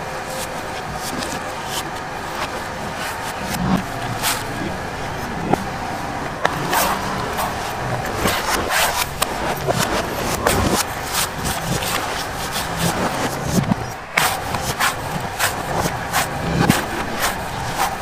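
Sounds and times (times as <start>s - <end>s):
steady background noise: 0.0s - 18.0s.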